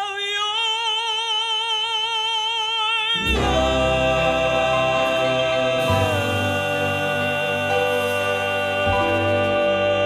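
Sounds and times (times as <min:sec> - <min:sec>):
male vocal quartet singing: 0:00.0 - 0:10.0.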